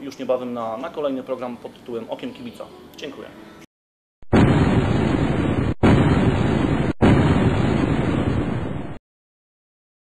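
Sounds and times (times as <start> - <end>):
loud explosion-like booms: 4.2 - 9.0.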